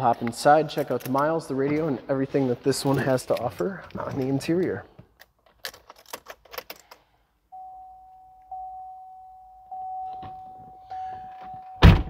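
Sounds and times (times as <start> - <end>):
car warning chime: 7.5 - 12.0.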